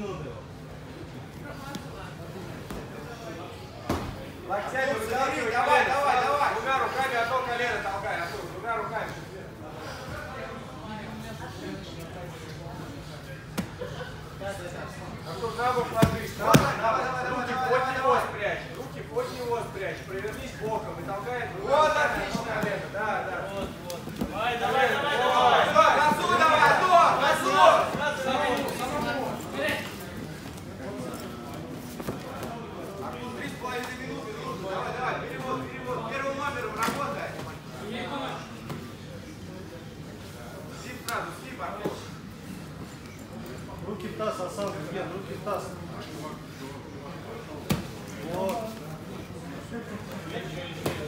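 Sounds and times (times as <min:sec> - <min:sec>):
men calling out and talking: 0:12.9 - 0:31.0.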